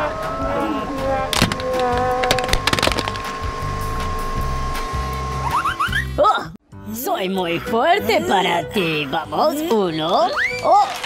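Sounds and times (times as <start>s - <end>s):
steady high tone: 0.0s - 6.0s
background music: 0.0s - 11.0s
plastic case cracking under press: 1.4s - 3.3s.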